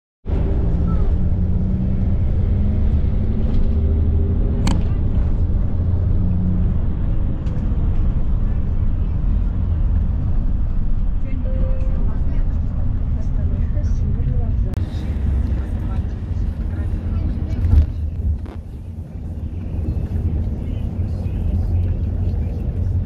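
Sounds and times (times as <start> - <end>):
vehicle driving rumble: 0.3 - 23.0.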